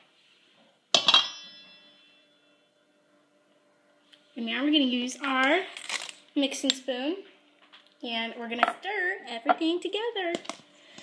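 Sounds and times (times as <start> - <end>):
glass cup clanging against metal bowl: 1.0 - 1.7.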